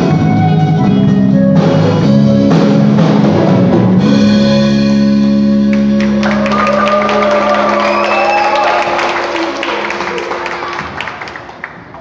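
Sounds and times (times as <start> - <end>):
audience applause and cheers: 5.8 - 12.0.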